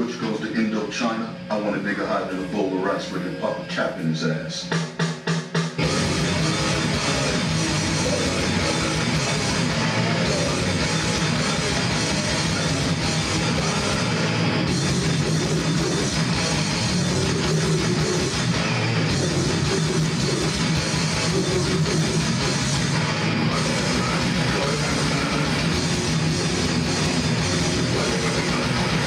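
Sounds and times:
heavy rock band playing: 0:03.2 - 0:29.0.

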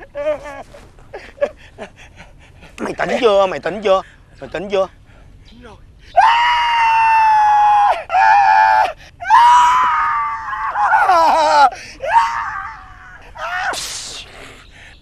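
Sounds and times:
man wailing: 0:06.2 - 0:13.9.

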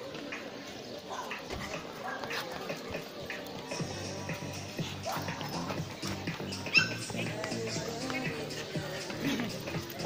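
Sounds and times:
background music: 0:00.0 - 0:10.0
crowd chatter: 0:00.0 - 0:10.0
dog barking: 0:05.0 - 0:05.8, 0:06.7 - 0:07.1.

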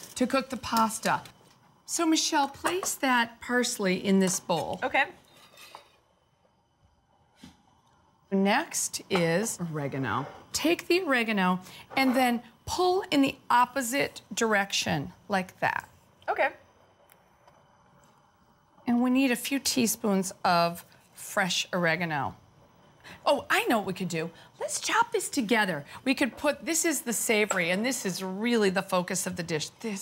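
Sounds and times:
woman speaking: 0:01.9 - 0:05.2, 0:08.3 - 0:16.6, 0:18.9 - 0:22.4, 0:23.2 - 0:30.0
blade scraping cutting board: 0:05.3 - 0:06.0.

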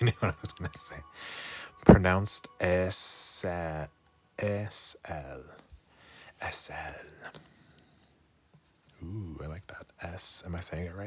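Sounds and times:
man half-whispering: 0:06.4 - 0:07.6, 0:08.9 - 0:11.0.

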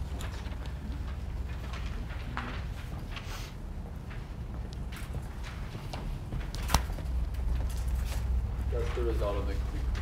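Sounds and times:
footsteps across a room: 0:00.0 - 0:10.0
low room hum: 0:00.0 - 0:10.0.

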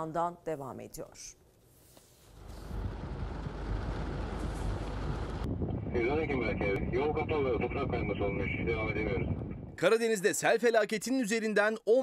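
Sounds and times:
man speaking: 0:06.0 - 0:09.2.

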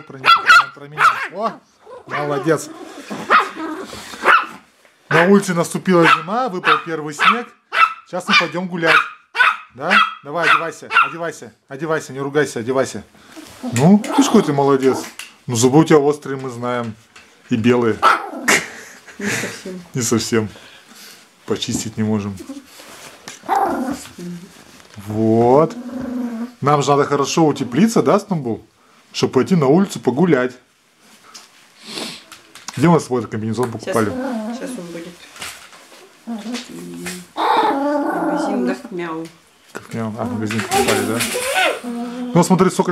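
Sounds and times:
small dog barking: 0:00.2 - 0:01.4, 0:02.0 - 0:02.5, 0:03.3 - 0:03.6, 0:04.2 - 0:04.6, 0:06.0 - 0:11.2, 0:18.0 - 0:18.4
dog low grumble: 0:25.6 - 0:26.6, 0:36.3 - 0:38.9, 0:40.2 - 0:42.6
small dog grumbling bark: 0:36.3 - 0:38.9, 0:40.2 - 0:42.4.

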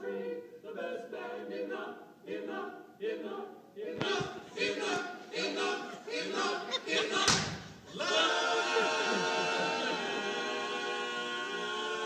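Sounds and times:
men chanting: 0:03.9 - 0:12.0
sharp thump: 0:07.2 - 0:07.8.

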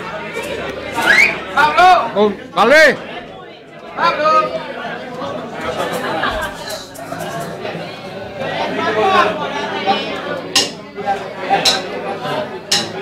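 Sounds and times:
people chattering: 0:00.0 - 0:13.0.

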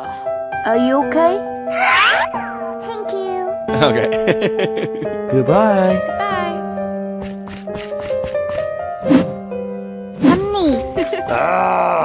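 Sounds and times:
light children's music: 0:00.0 - 0:09.5, 0:10.1 - 0:11.5
falling cartoon sound effect: 0:01.7 - 0:02.8.

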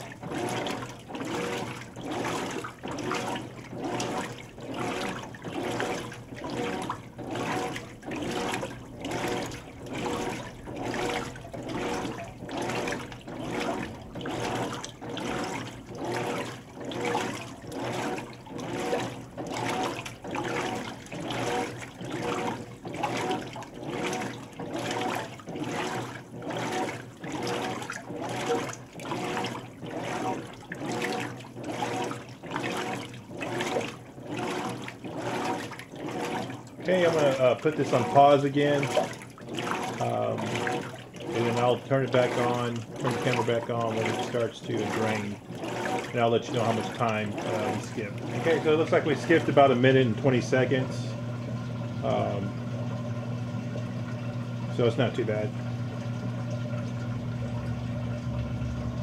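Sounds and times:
water sloshing in washer tub: 0:00.0 - 0:59.0.

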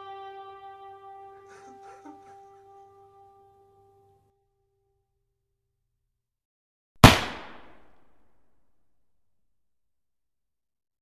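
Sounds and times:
loud gunshot with echo: 0:07.0 - 0:07.9.

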